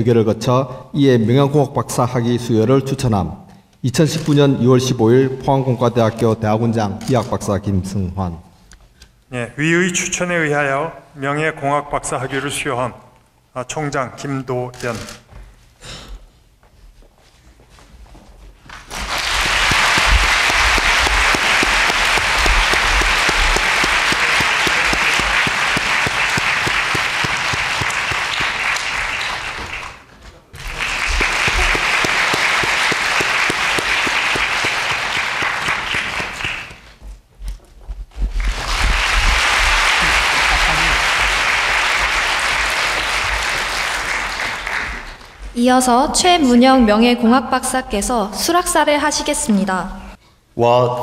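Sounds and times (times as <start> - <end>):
large audience applauding: 18.7 - 37.0, 38.4 - 45.4.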